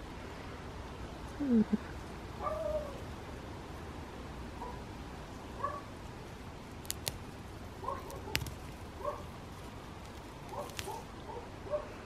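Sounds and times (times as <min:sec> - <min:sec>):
herb sprigs snapping: 0:06.7 - 0:11.2.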